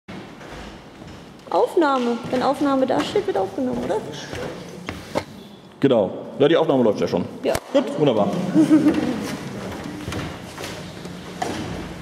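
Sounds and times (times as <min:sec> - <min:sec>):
man speaking: 0:05.8 - 0:08.7.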